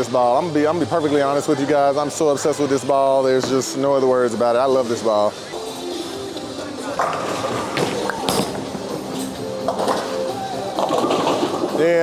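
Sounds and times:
background music: 0.0s - 12.0s
bowling ball rolling: 5.7s - 12.0s.

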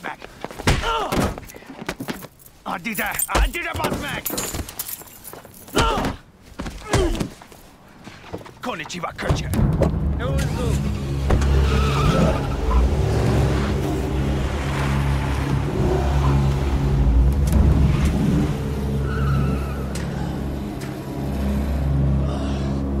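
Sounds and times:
tire squeals: 10.5s - 17.2s, 17.8s - 21.5s.

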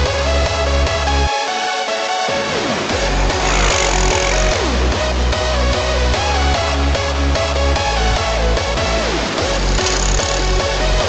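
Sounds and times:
electronic dance music: 2.5s - 5.3s.

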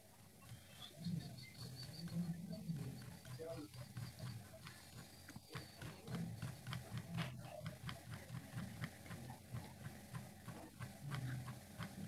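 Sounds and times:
low muffled murmur: 0.0s - 12.0s
faint irregular clicking: 0.4s - 12.0s.

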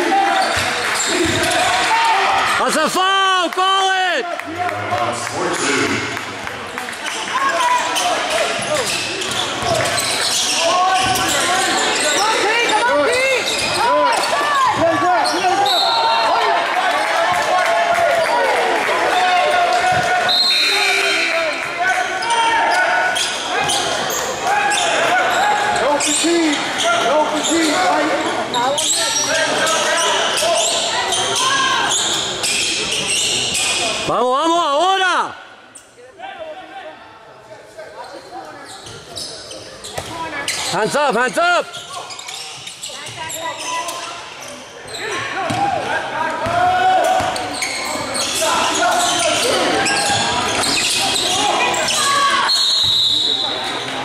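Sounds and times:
voices shouting: 7.3s - 35.3s.

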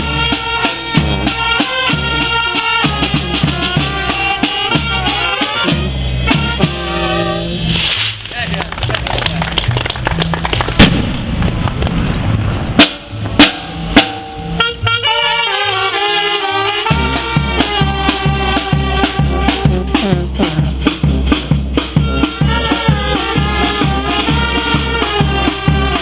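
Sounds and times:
brass band playing: 0.0s - 8.2s, 12.8s - 26.0s
bass drum and cymbal strokes: 16.9s - 26.0s.

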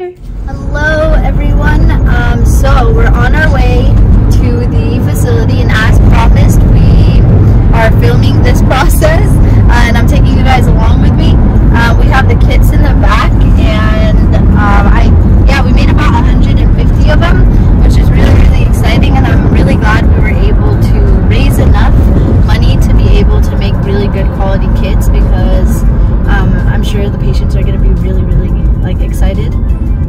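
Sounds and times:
car road and engine rumble: 0.0s - 30.0s.

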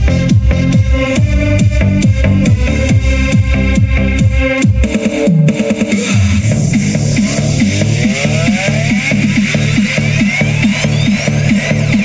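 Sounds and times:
pulsing electronic bass line: 0.0s - 12.0s
rising synth sweeps: 6.1s - 12.0s.

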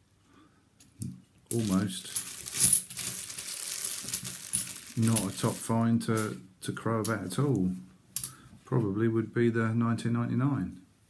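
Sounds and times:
coins clinking and scraping: 1.5s - 6.4s.

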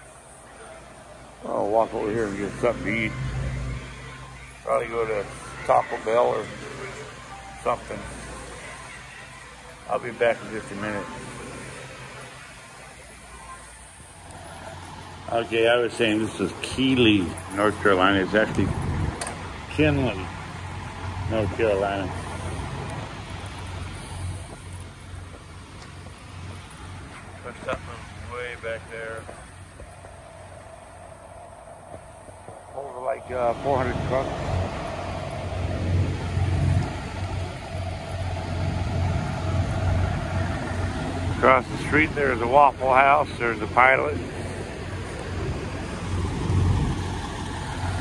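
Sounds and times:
idling truck engines: 0.0s - 48.0s
traffic rumble: 0.0s - 48.0s.

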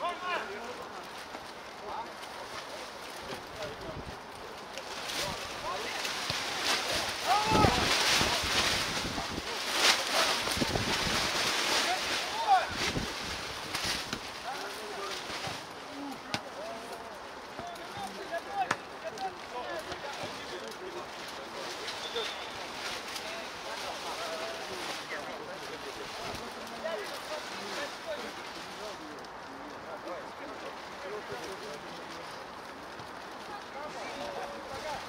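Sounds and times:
steady background hiss: 0.0s - 35.0s.

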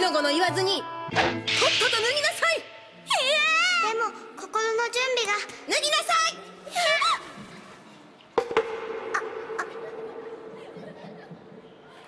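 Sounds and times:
sharp strikes: 1.1s - 2.9s.

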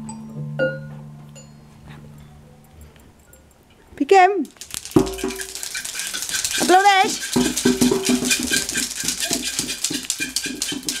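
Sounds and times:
xylophone notes: 0.0s - 2.4s
rattling of shaken percussion: 4.4s - 11.0s.

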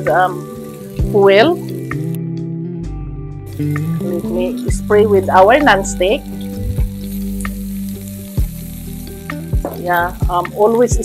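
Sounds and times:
meat sizzling in a skillet: 0.0s - 2.2s, 3.5s - 11.0s
background music with held notes: 0.0s - 11.0s.

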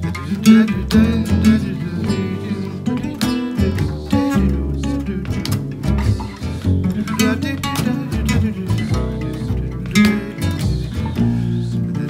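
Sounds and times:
acoustic guitars picking and strumming: 0.0s - 12.0s
plucked upright bass: 0.0s - 12.0s.

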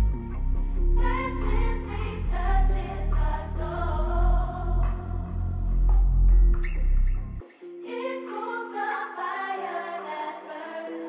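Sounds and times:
deep bass line: 0.0s - 7.4s
choir-like vocal sample: 0.6s - 5.8s.

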